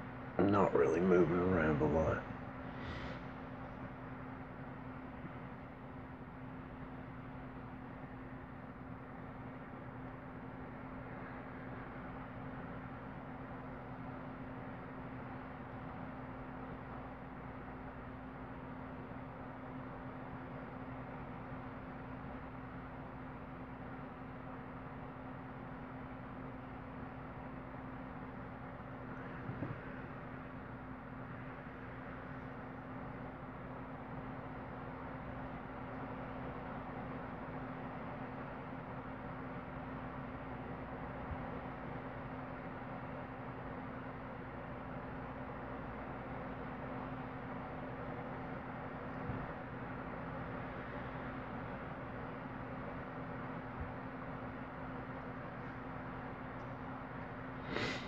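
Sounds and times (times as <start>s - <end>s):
low droning hum: 0.0s - 57.7s.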